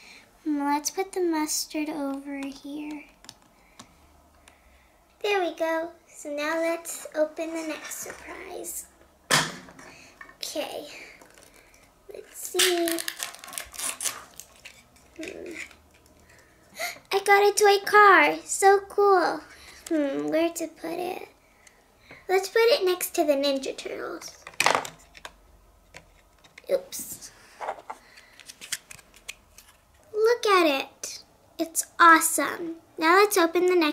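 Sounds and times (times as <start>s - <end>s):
paper and plastic wrapping crinkling: 11.2s - 16.5s
plastic toy packaging clicks: 12.6s - 16.2s.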